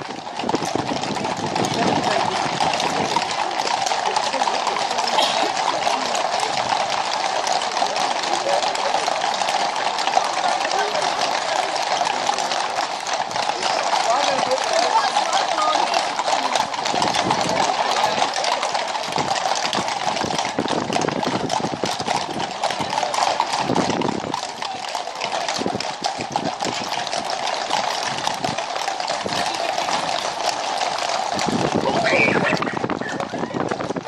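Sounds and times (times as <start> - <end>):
horse hooves clip-clopping on road: 0.0 - 34.0.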